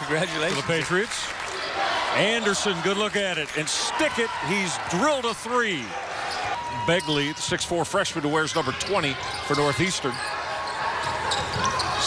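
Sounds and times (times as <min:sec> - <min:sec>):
murmur of arena crowd: 0:00.0 - 0:12.0
sneaker squeaks: 0:09.0 - 0:12.0
ball bouncing on hardwood court: 0:11.0 - 0:12.0.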